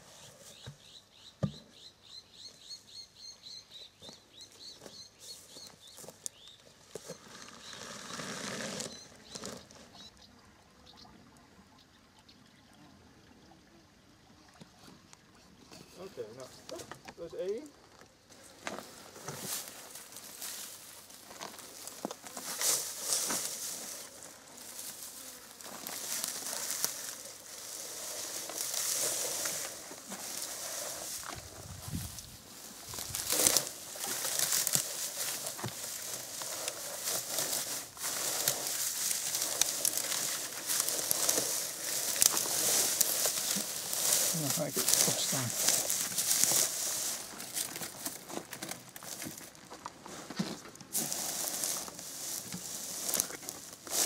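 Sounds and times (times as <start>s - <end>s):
dry grass rustling and crackling: 4.5s - 10.1s, 18.3s - 54.0s.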